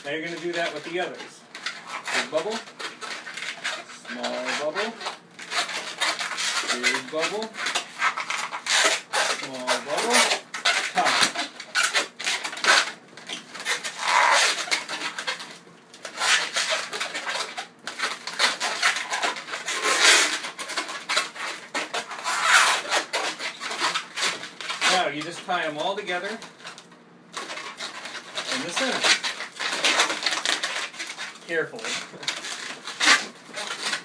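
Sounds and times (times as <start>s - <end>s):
balloons squeaking while twisted: 0.0s - 34.0s.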